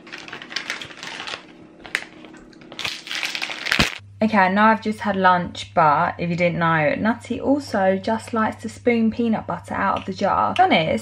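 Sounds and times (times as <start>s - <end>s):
crisp packet crinkling: 0.0s - 4.0s.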